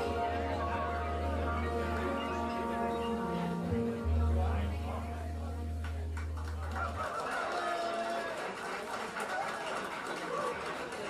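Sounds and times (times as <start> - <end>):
audience calling out and whooping: 5.7 - 11.0.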